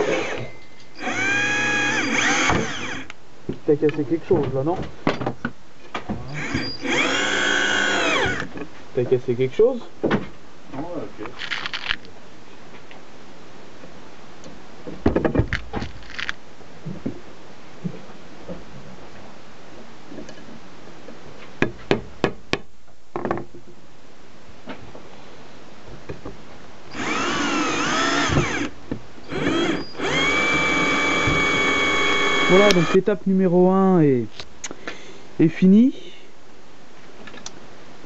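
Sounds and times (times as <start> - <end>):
electric drill driving a screw: 0.0 - 3.1, 6.4 - 8.5, 26.9 - 33.0
steady low hiss: 0.0 - 38.0.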